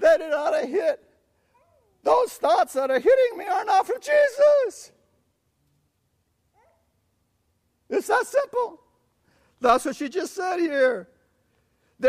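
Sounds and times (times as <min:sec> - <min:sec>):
man speaking: 0:00.0 - 0:01.2, 0:02.0 - 0:05.0, 0:07.9 - 0:08.9, 0:09.6 - 0:11.1.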